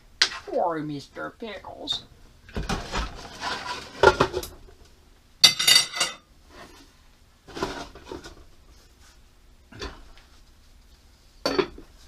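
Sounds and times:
utensil scraping frying pan: 2.8s - 4.4s.

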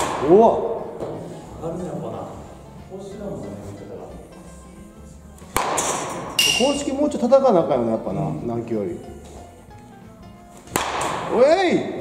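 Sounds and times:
wooden bat cracking a ball: 0.0s - 0.3s, 5.4s - 6.6s, 10.6s - 11.4s.

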